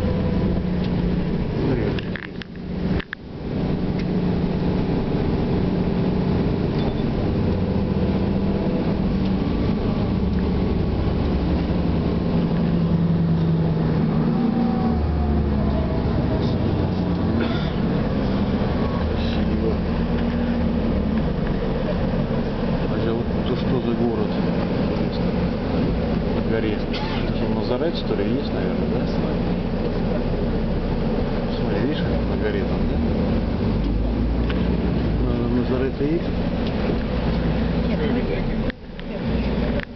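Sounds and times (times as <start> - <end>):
road noise: 0.0 - 39.9
vehicle engine drone: 0.0 - 39.9.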